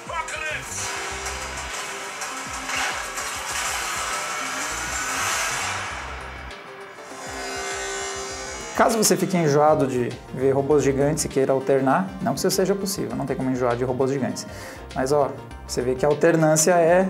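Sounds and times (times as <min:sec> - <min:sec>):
dramatic trailer music: 0:00.0 - 0:11.4
sound effects: 0:00.6 - 0:09.3
rising whine: 0:02.5 - 0:09.3.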